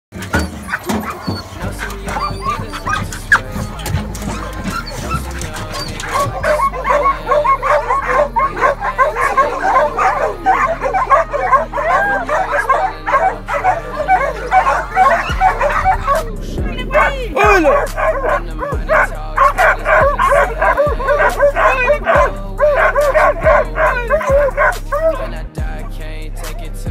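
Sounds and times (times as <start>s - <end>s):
dogs barking rapidly: 0.1s - 26.9s
music with deep bass line: 0.1s - 26.9s.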